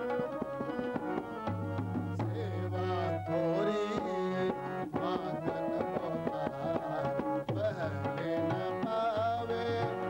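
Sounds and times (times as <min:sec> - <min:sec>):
harmonium chords: 0:00.0 - 0:10.0
tabla strokes: 0:00.0 - 0:10.0.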